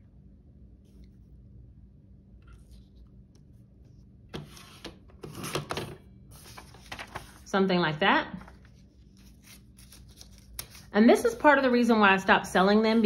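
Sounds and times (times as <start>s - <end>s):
paper rustling: 6.3s - 7.5s, 8.3s - 10.9s.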